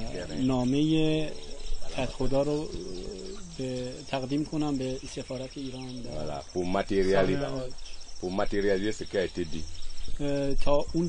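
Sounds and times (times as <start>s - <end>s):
insects chirping: 0.0s - 11.0s
man talking: 0.0s - 11.0s.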